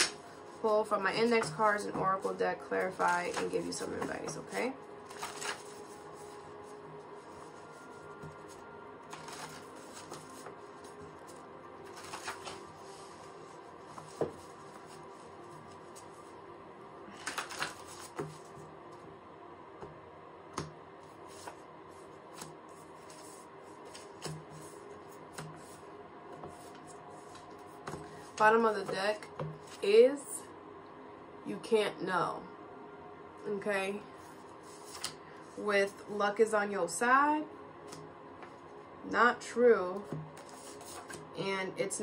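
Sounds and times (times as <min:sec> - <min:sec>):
cards being shuffled by hand: 0:00.0 - 0:16.3, 0:17.1 - 0:18.6, 0:21.0 - 0:21.6, 0:22.3 - 0:25.8, 0:26.4 - 0:29.8, 0:34.6 - 0:35.2, 0:40.0 - 0:41.3.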